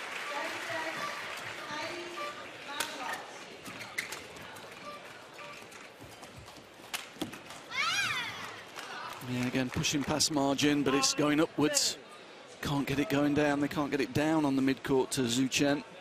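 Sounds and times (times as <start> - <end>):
shoe squeaking on court: 3.6 - 6.6.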